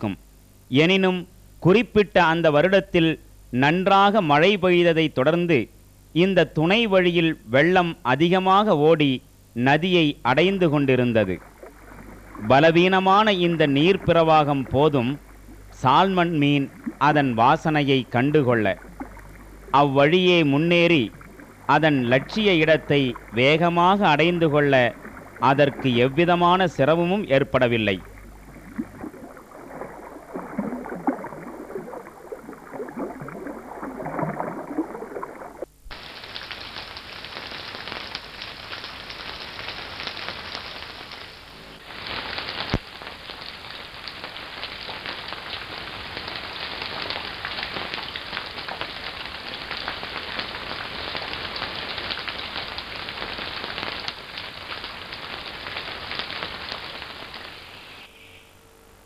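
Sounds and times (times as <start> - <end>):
water rippling and splashing: 10.8 - 57.7
dense hiss of water: 10.8 - 58.3.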